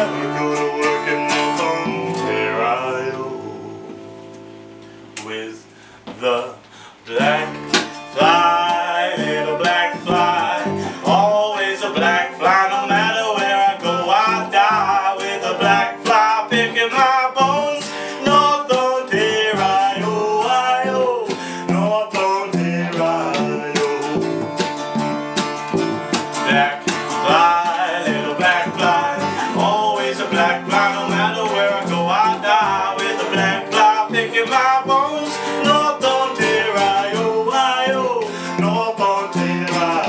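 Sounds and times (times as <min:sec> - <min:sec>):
strummed acoustic guitars: 0:00.0 - 0:40.0
wavering melody line: 0:00.4 - 0:04.7.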